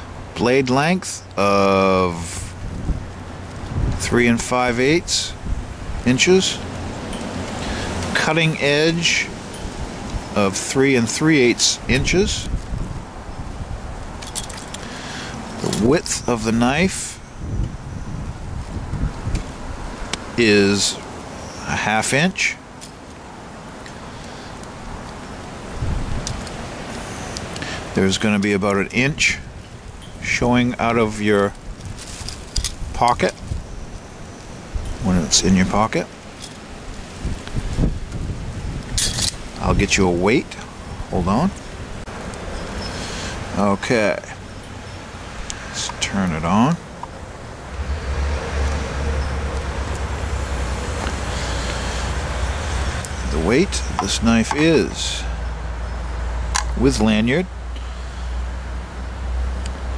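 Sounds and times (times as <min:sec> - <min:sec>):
wind rumbling on microphone: 0:01.9 - 0:10.7, 0:11.4 - 0:21.6, 0:22.6 - 0:43.6
even hiss: 0:14.7 - 0:17.2, 0:42.1 - 0:44.4, 0:45.2 - 0:46.8, 0:47.5 - 0:55.5.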